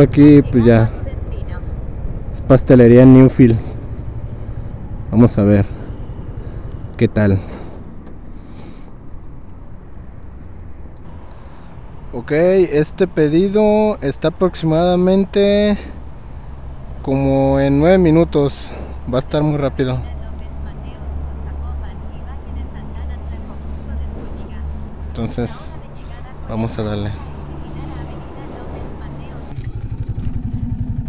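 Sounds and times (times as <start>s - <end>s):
motorcycle engine idling: 0.0s - 11.0s, 21.7s - 31.0s.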